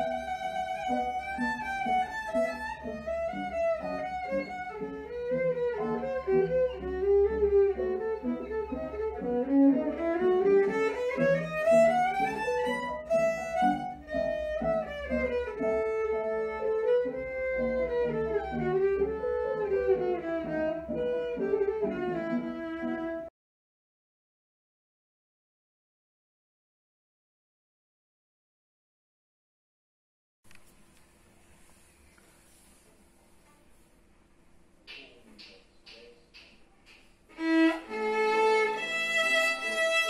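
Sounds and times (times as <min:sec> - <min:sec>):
solo violin melody: 0:00.0 - 0:23.3, 0:37.3 - 0:40.0.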